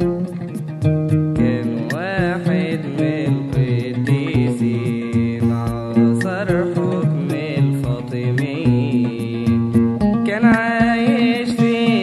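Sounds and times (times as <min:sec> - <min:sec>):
ornamented melody: 0:00.0 - 0:12.0
steady percussion beat: 0:00.0 - 0:12.0.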